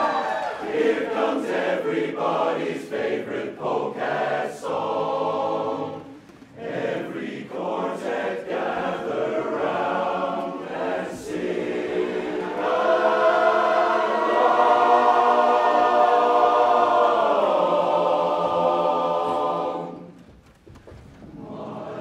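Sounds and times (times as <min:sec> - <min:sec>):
men's chorus singing a cappella: 0:00.6 - 0:20.2, 0:21.3 - 0:22.0.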